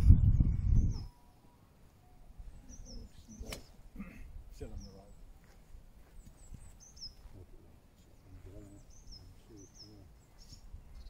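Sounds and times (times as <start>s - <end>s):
wind buffeting microphone: 0.0s - 1.2s, 8.3s - 11.0s
faint bird chirps: 0.0s - 11.0s.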